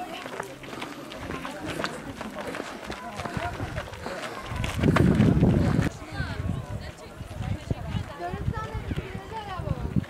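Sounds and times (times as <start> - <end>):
footsteps on gravel: 0.0 - 6.0
people talking: 0.0 - 10.0.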